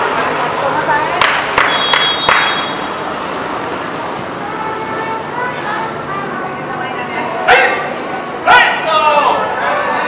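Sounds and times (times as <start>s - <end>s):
steady background rush: 0.0s - 10.0s
thin high whistle tone: 1.6s - 2.9s.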